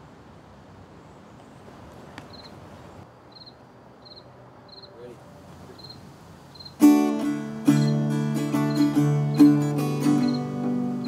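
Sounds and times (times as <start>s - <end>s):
quiet outdoor background noise: 0.0s - 11.0s
cricket chirping: 2.3s - 11.0s.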